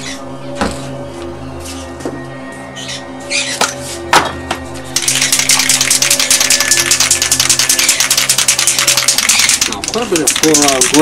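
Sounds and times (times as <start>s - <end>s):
background music with held notes: 0.0s - 11.0s
sharp clicks: 5.0s - 11.0s
spray can rattling while shaken: 5.0s - 11.0s.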